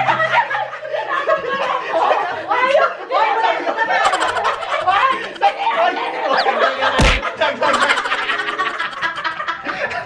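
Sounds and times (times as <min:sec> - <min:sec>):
group of people laughing: 0:00.0 - 0:10.0.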